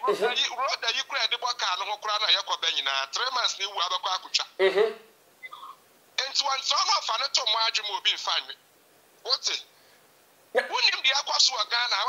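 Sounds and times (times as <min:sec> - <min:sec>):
man speaking: 0:00.0 - 0:04.6, 0:06.2 - 0:08.6, 0:09.2 - 0:09.7, 0:10.6 - 0:12.0.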